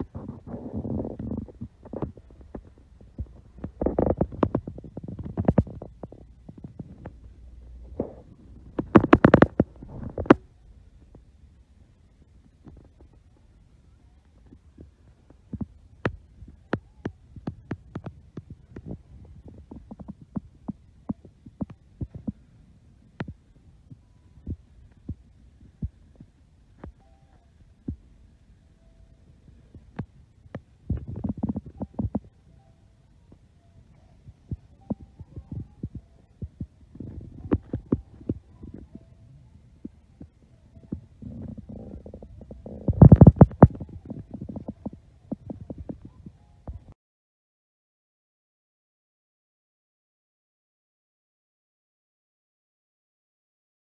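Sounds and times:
thumps and rubbing on microphone: 0.0 - 11.2, 14.4 - 22.5, 29.7 - 32.4, 34.3 - 39.1, 39.8 - 47.0.

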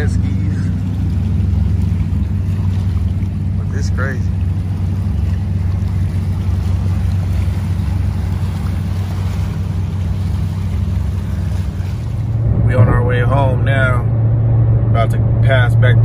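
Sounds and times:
boat engine drone: 0.0 - 16.0
wind: 0.0 - 16.0
man's voice: 12.6 - 14.1.

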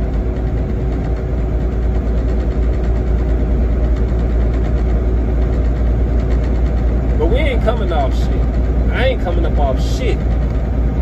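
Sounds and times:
low engine rumble with hiss: 0.0 - 11.0.

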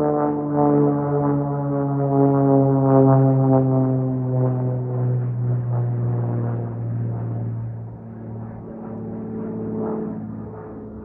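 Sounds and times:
propeller plane droning overhead: 0.0 - 11.0.

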